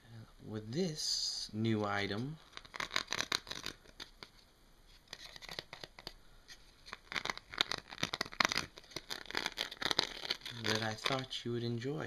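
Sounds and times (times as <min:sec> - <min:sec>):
fingers scratching dimpled sheet: 0:02.2 - 0:04.4, 0:06.8 - 0:11.3.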